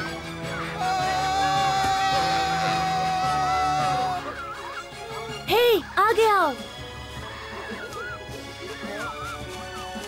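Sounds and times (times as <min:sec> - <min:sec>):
cartoon background music: 0:00.0 - 0:10.0.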